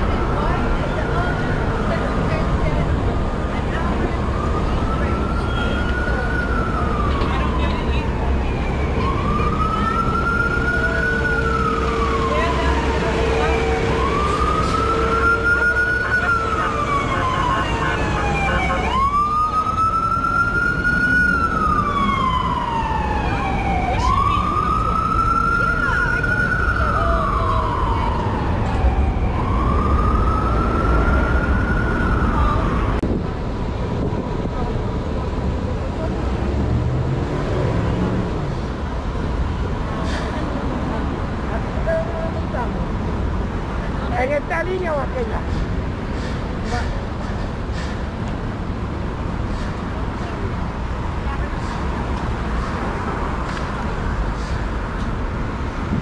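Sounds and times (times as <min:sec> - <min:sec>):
emergency siren wailing: 0:00.0 - 0:33.2
city traffic rumble: 0:00.0 - 0:56.0.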